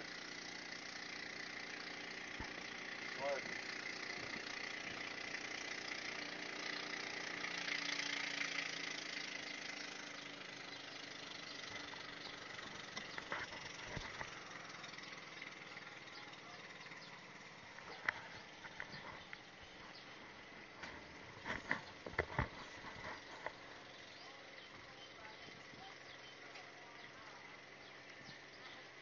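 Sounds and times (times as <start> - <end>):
distant motorboat engine: 0.0 - 29.0.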